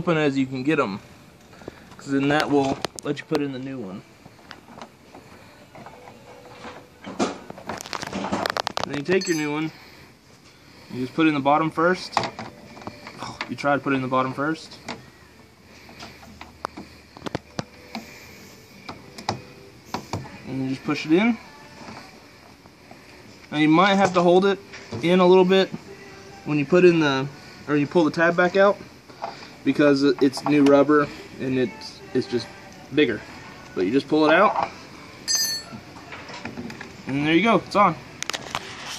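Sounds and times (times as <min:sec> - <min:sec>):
faint handling noise: 0:01.5 - 0:09.7.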